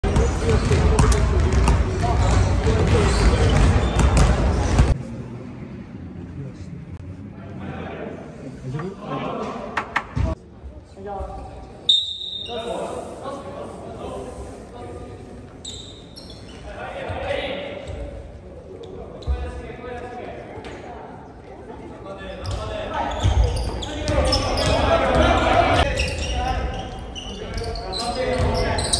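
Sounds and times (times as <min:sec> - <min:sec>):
basketballs bouncing on wooden floor: 0:00.0 - 0:05.0
voices echoing: 0:00.0 - 0:28.9.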